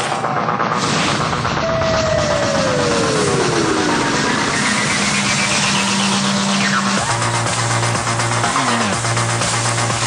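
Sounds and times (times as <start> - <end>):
car engine humming: 2.7 - 10.0.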